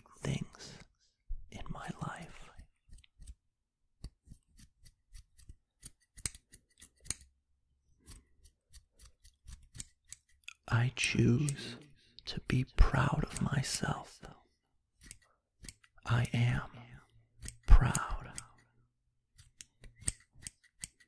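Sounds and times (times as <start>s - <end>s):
scissors snipping: 2.5s - 3.4s, 4.0s - 7.3s, 8.0s - 11.6s, 15.0s - 16.0s, 17.4s - 18.6s, 19.3s - 21.0s.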